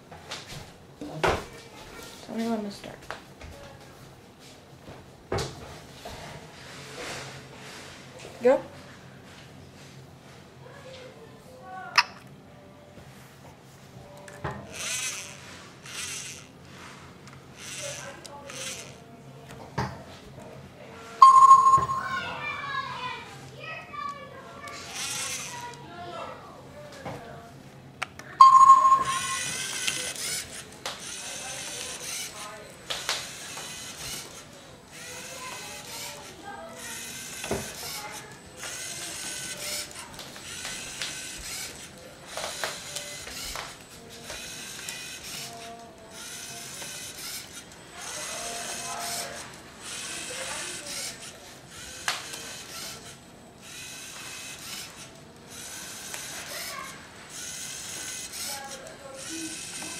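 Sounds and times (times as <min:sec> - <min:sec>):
short electronic beep: 0:21.2 - 0:22.2, 0:28.4 - 0:29.6.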